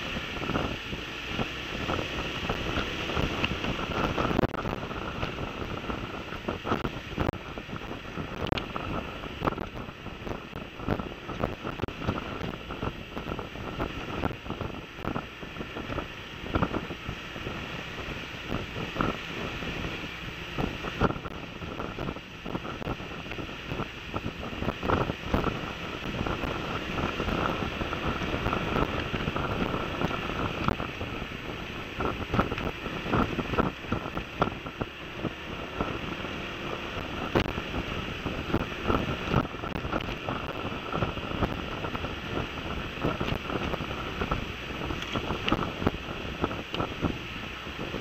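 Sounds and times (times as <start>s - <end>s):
scooter running noise: 0.0s - 48.0s
wind buffeting microphone: 0.0s - 48.0s.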